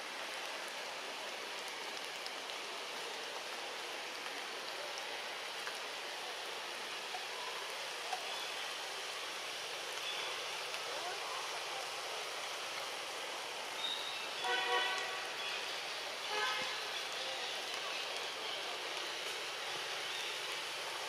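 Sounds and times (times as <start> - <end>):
light rain on foliage: 0.0 - 21.0.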